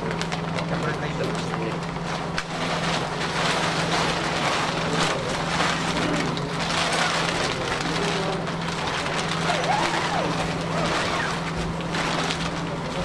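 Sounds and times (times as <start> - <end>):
plastic crinkling and rustling: 0.0 - 13.0.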